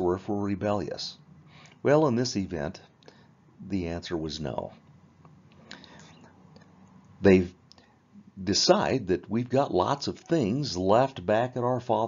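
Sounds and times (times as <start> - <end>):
man breathing: 3.0 - 3.4, 5.6 - 6.3.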